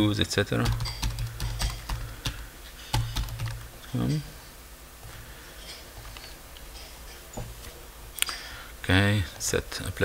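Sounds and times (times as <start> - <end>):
steady low hum: 0.0 - 10.0
laptop keyboard typing: 0.6 - 3.7.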